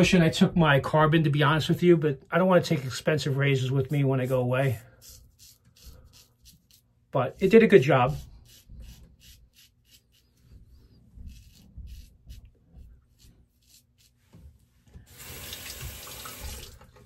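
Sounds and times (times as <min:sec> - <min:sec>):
razor scraping stubble: 0:02.7 - 0:14.4
tap running: 0:14.3 - 0:17.0.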